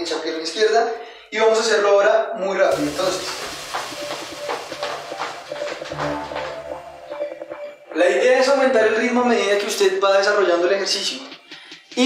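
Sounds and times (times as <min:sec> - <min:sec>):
background music: 0:02.7 - 0:12.0.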